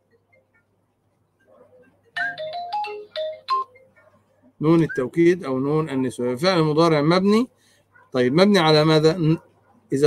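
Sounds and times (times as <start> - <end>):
electronic phone ringtone: 2.1 - 4.0.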